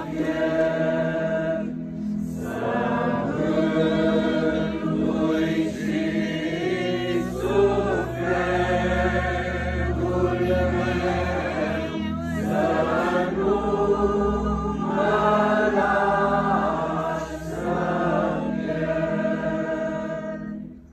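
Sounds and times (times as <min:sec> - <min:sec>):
group singing a cappella chant: 0:00.0 - 0:20.9.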